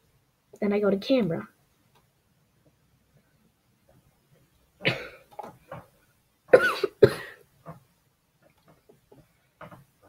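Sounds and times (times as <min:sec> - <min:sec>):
person coughing: 0:04.8 - 0:05.3, 0:06.5 - 0:07.4.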